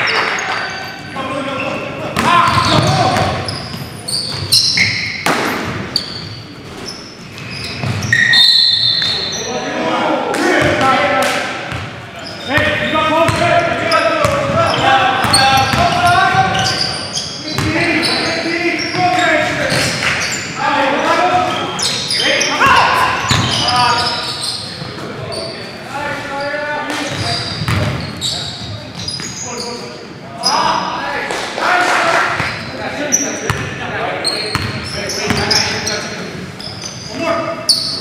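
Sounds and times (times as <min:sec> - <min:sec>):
players calling out: 0:00.0 - 0:38.0.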